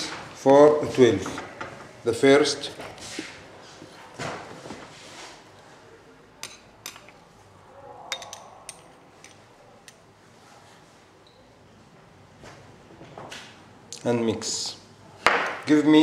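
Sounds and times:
glass bottles clinking: 0:08.1 - 0:09.4.

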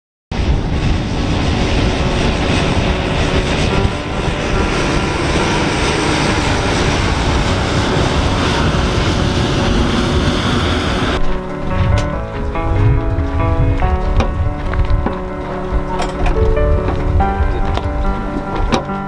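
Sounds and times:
turboprop plane engines running: 0:00.3 - 0:19.0.

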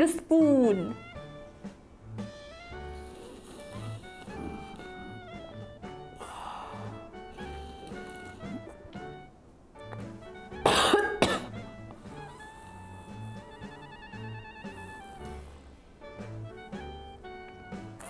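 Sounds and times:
music with steady beat: 0:00.0 - 0:18.0
person coughing hard: 0:10.6 - 0:11.6.

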